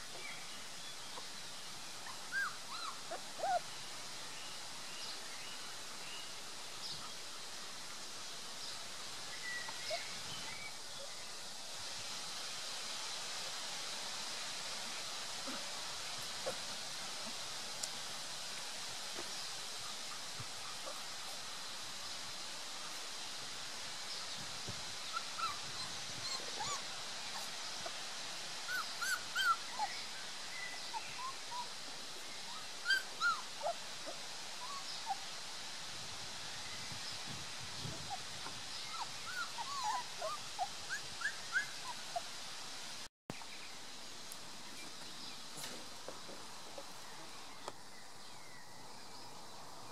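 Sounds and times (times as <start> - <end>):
steady outdoor hiss: 0.0 - 49.9
puppies whimpering and squeaking: 2.0 - 3.6, 25.1 - 27.5, 28.7 - 29.9, 32.9 - 33.8, 38.9 - 42.2.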